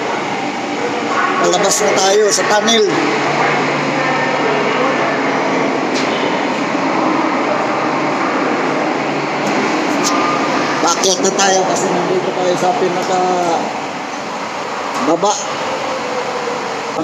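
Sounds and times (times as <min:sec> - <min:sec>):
train running and ventilation noise: 0:00.0 - 0:17.0.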